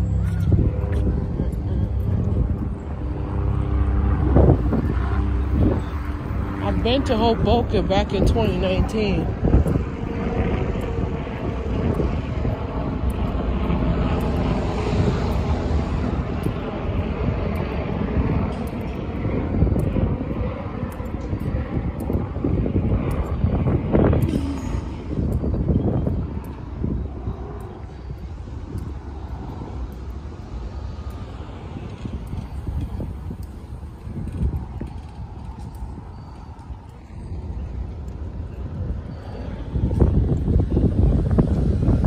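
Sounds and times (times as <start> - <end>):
low engine drone: 0.0 - 42.0.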